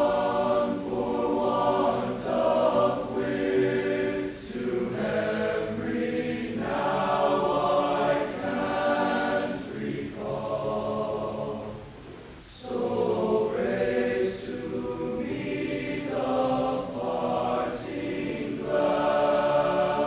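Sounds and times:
male choir singing in harmony: 0.0 - 20.0.

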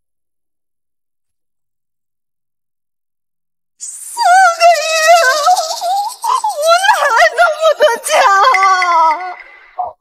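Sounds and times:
woman wailing tearfully: 5.2 - 9.4.

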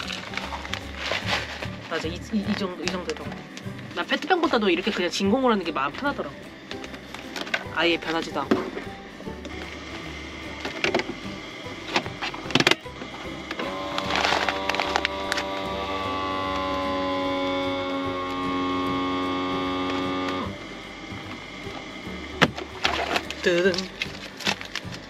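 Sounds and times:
vacuum sealer pump humming: 0.0 - 25.0.

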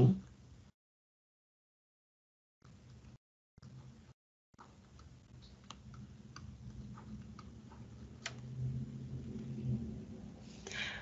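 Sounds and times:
low steady hum: 2.7 - 11.0.

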